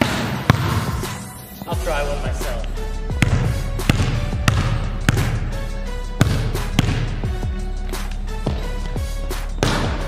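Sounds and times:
basketball bouncing on hardwood floor: 0.0 - 1.0, 3.1 - 5.6, 6.2 - 7.5, 9.6 - 10.0
background music with bass: 0.0 - 10.0.

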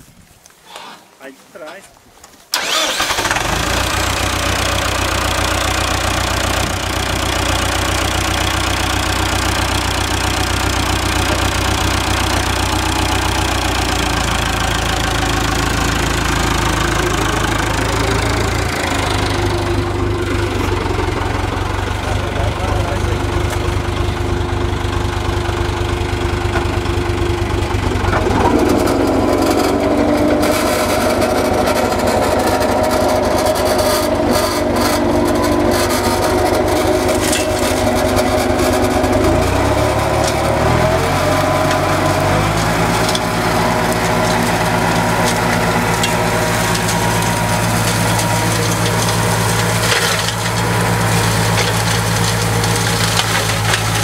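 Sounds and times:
tractor diesel engine running: 2.5 - 54.0.

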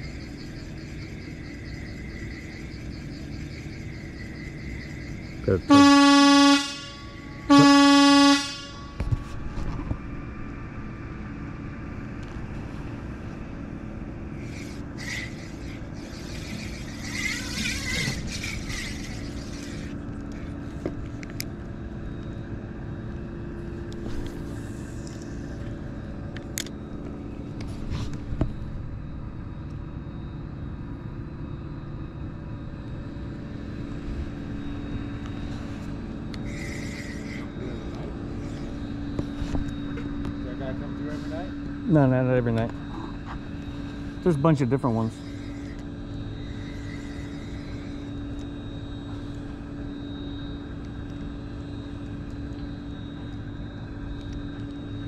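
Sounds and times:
low outdoor hum: 0.0 - 55.0
horn blasts: 5.5 - 9.0.

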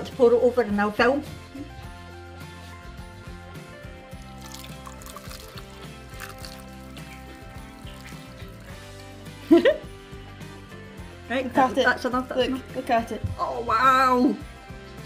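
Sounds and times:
background music: 0.0 - 15.0
milk pouring into a mug: 4.2 - 9.2.

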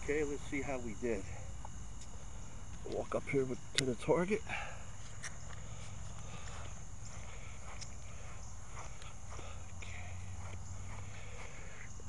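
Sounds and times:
footsteps on grass: 5.0 - 12.0.

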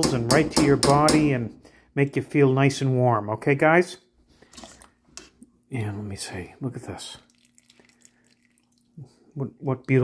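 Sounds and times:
broth dripping into pot: 7.2 - 9.1.

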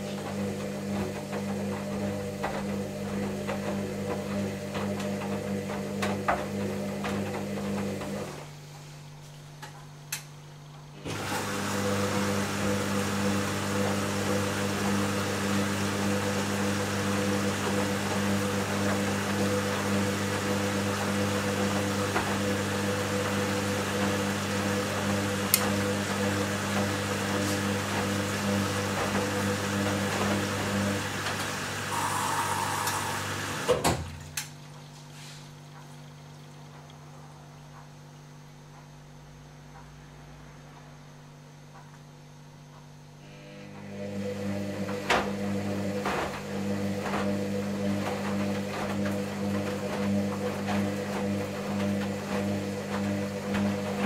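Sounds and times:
motor hum: 21.6 - 54.0
water sloshing: 34.1 - 37.7.

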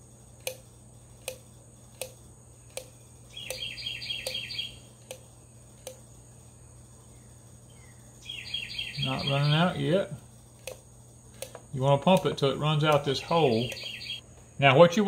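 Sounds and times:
bird chirping: 3.3 - 4.9, 7.0 - 9.9, 12.9 - 14.2.

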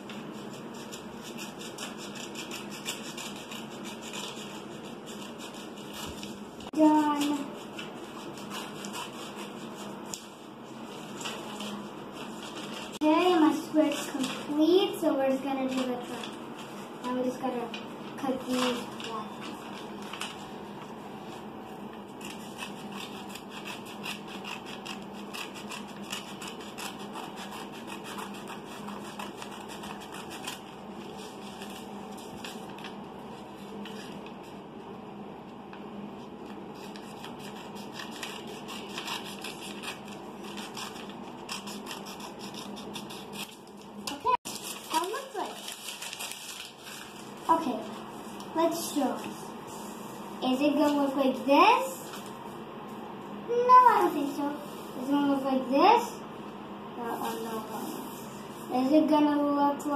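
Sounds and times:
steady background hum: 0.0 - 59.9
scissors snipping paper: 0.1 - 10.3, 22.2 - 33.0, 36.5 - 47.7
paper rustling: 0.1 - 14.6, 15.3 - 34.6, 36.3 - 49.4.

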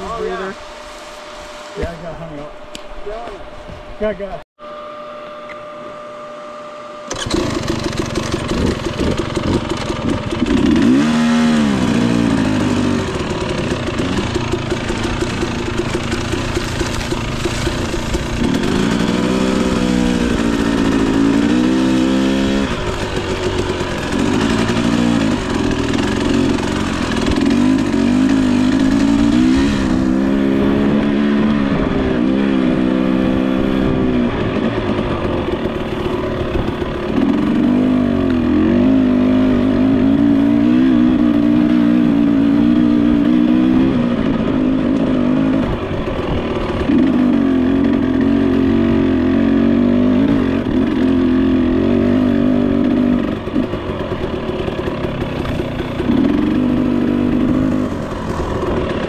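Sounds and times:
dirt bike engine revving: 4.0 - 59.0.

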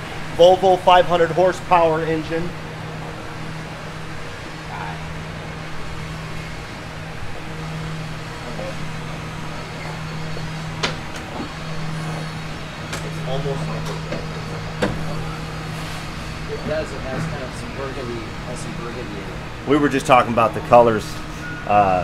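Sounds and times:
steady low hum: 0.0 - 22.0
faint voices: 3.1 - 5.8.

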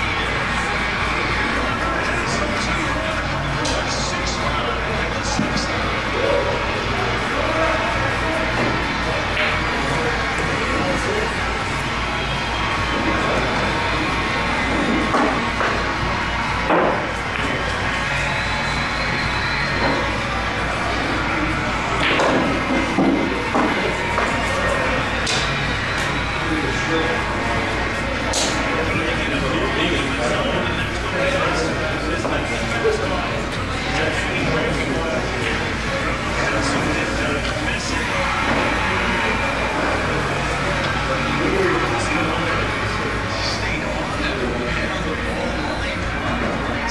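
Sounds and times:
crowd chatter: 0.0 - 46.9.

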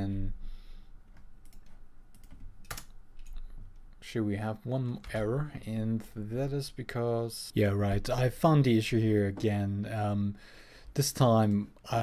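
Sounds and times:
computer keyboard clicks: 1.1 - 3.4.

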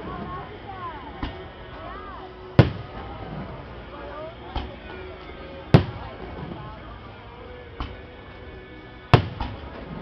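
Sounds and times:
firework crack: 2.4 - 3.8, 5.6 - 6.8, 9.1 - 10.0
firework shells bursting: 2.6 - 3.0.

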